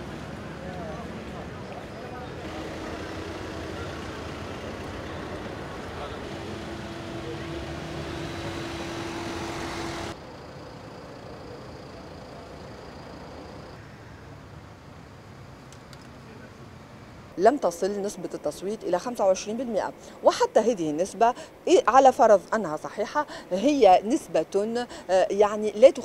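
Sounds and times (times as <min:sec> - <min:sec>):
vehicles passing: 0:00.0 - 0:20.2
steady background noise: 0:00.0 - 0:26.0.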